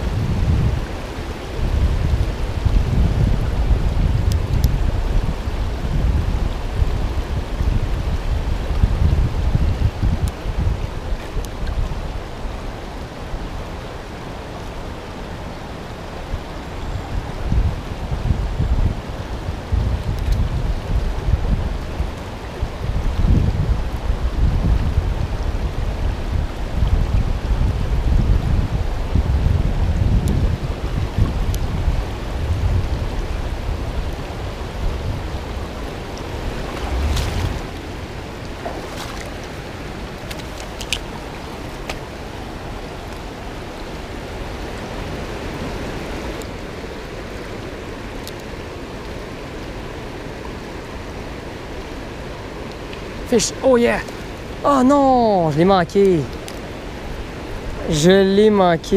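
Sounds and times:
river rushing over rocks: 0:00.0 - 0:58.9
wind buffeting microphone: 0:00.0 - 0:58.9.

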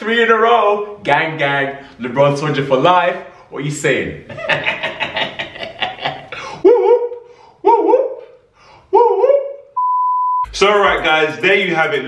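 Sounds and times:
steady test-tone beep: 0:09.8 - 0:10.5.

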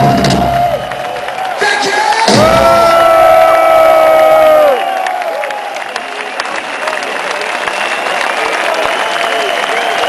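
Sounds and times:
crowd cheering and applauding: 0:00.0 - 0:10.0.

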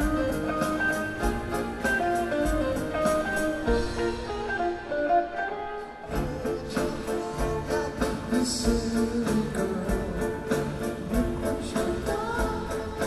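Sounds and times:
electric guitar melody: 0:00.0 - 0:13.0
live rock band playing: 0:00.0 - 0:13.0.

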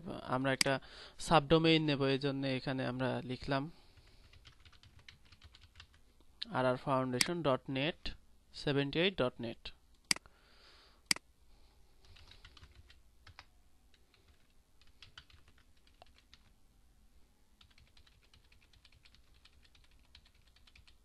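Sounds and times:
typing on computer keyboard: 0:04.2 - 0:06.0, 0:12.0 - 0:16.5, 0:17.6 - 0:21.0.

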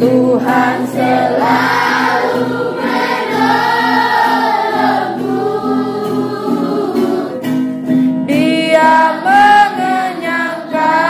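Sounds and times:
children singing worship song: 0:00.0 - 0:07.6, 0:08.3 - 0:11.0
strummed acoustic guitar: 0:00.0 - 0:11.0.

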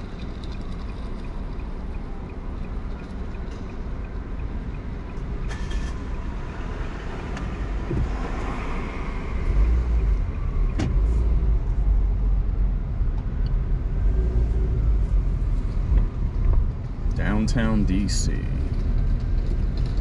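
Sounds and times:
car road rumble: 0:00.0 - 0:20.0.

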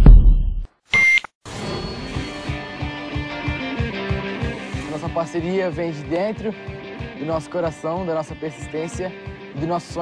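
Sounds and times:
deep booming hits: 0:00.0 - 0:00.6
electronic test-tone beep: 0:00.0 - 0:01.2
music with a beat: 0:02.5 - 0:10.0.

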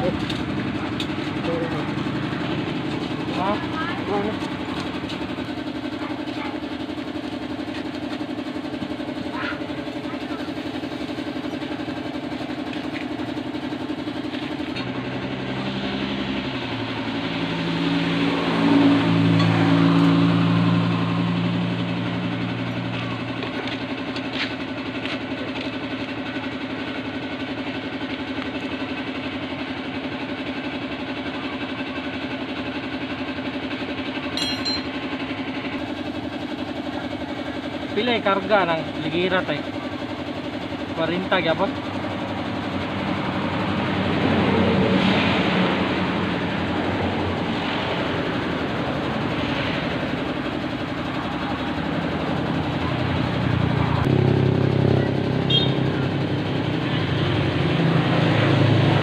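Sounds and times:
steady engine drone: 0:00.0 - 0:59.0
vehicle passing by: 0:15.1 - 0:23.0, 0:42.6 - 0:59.0.

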